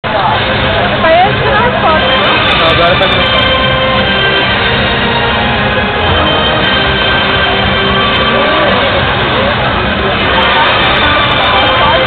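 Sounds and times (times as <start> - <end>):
crowded arena din: 0.0 - 12.0
voices talking: 0.0 - 12.0.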